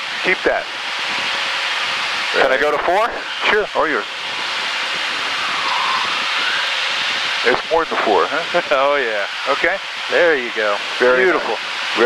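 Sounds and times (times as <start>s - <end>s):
faint rising whine: 0.0s - 12.0s
jet engine and airflow rushing: 0.0s - 12.0s.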